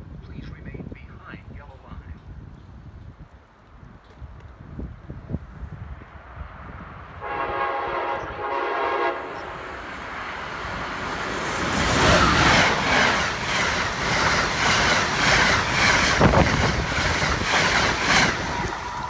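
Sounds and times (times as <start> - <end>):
train rushing past: 5.9 - 19.0
train horn: 7.2 - 9.6.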